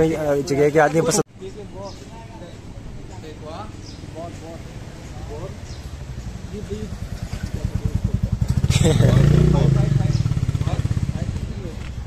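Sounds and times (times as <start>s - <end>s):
motorcycle passing by: 5.7s - 12.0s.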